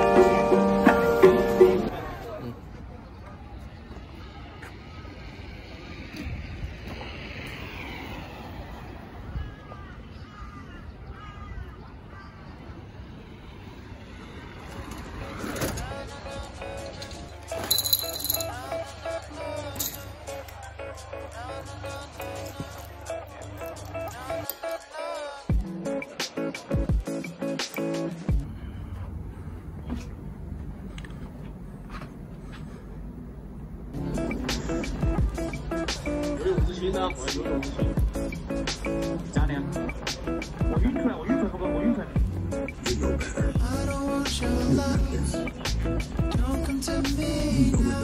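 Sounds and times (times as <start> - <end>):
road traffic rumble: 0.0 - 24.5, 27.8 - 48.0
faint voices: 0.0 - 48.0
music with heavy bass drum: 34.0 - 36.8, 42.2 - 48.0.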